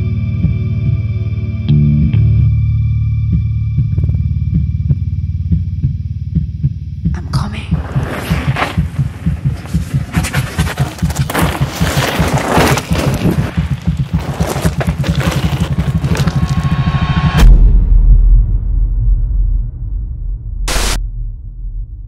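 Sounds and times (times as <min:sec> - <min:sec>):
pulsing bass beat music: 0:00.0 - 0:10.6
deep bass boom: 0:16.6 - 0:22.0.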